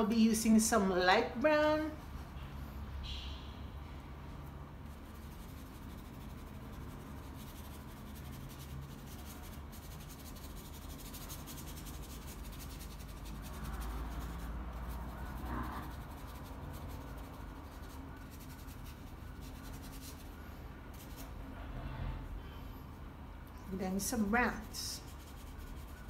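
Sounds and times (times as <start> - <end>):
paintbrush scrubbing on paper: 1.8 - 2.9, 4.8 - 21.4, 23.7 - 26.0.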